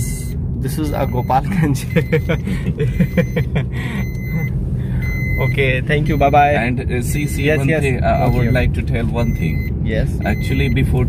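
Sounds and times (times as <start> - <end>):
car engine and road rumble: 0.0 - 11.0
man laughing: 1.5 - 4.5.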